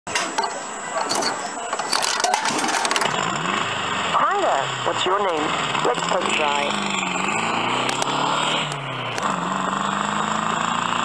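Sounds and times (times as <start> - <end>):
coin rattling through mechanism: 0.4 - 3.1
recorded engine starting effect: 1.2 - 11.0.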